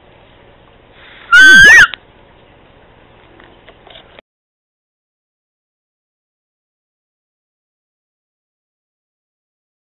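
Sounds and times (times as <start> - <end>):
cat meowing: 1.3 - 2.0.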